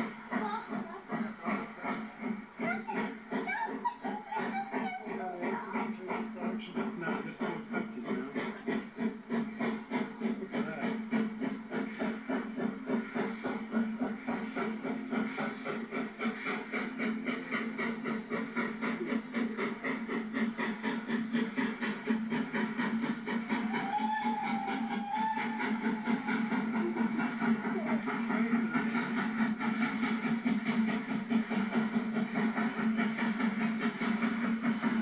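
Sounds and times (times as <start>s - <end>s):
steam locomotive exhaust chuffs: 0.0s - 35.0s
faint wavering whistle: 23.4s - 28.8s.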